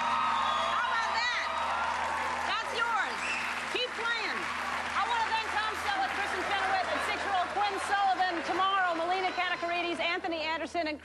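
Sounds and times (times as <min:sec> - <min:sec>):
audience applauding: 0:00.0 - 0:10.6.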